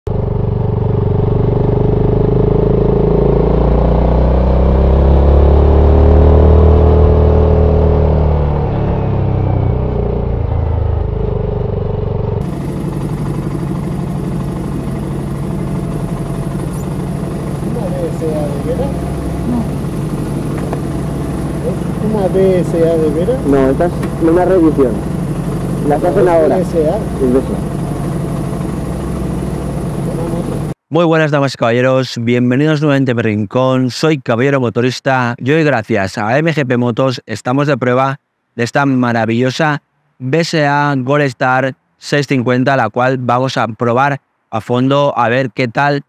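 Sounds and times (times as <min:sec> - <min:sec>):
motorcycle engine idling: 0:00.1 - 0:02.6, 0:10.5 - 0:30.8
motorcycle engine revving: 0:00.1 - 0:30.8
man talking: 0:17.6 - 0:19.7, 0:21.6 - 0:25.0, 0:25.8 - 0:27.6, 0:30.0 - 0:46.0.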